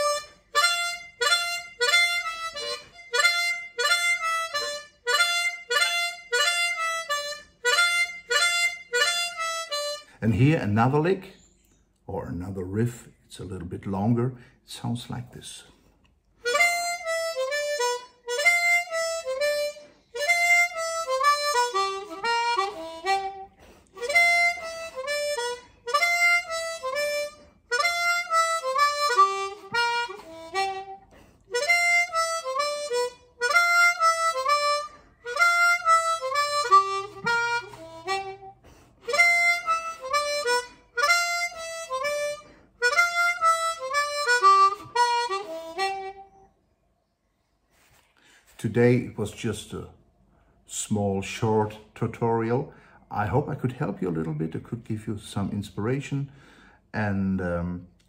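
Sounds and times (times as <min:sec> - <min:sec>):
blues harmonica riff: 0:00.0 - 0:11.6, 0:16.4 - 0:46.6.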